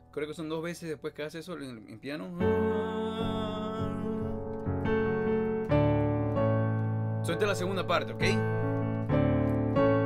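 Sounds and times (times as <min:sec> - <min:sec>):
piano chords: 0:02.2 - 0:10.0.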